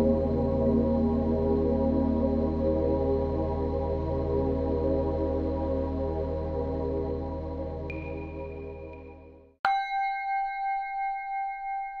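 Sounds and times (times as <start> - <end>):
singing bowl ringing: 7.9 - 12.0.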